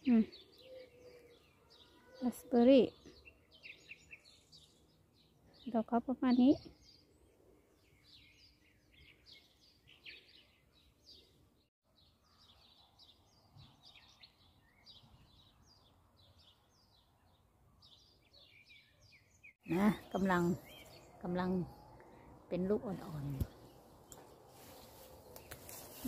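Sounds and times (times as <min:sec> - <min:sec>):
small birds chirping: 0:00.0 - 0:26.0.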